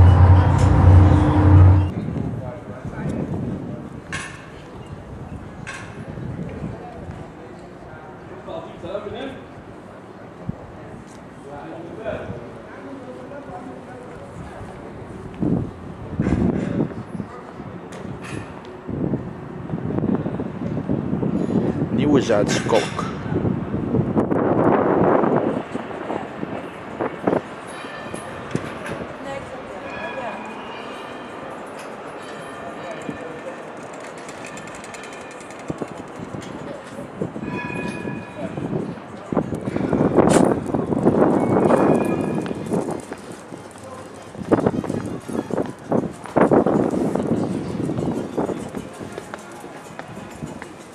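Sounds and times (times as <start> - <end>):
street noise: 0.0 - 50.9
tram rolling past: 0.0 - 50.9.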